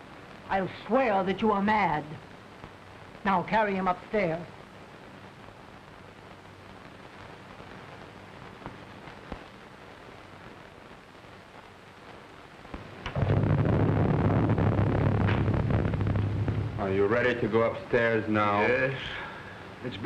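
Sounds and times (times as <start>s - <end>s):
soundtrack hiss: 0.0s - 20.0s
thunder cracking and rumbling: 13.0s - 20.0s.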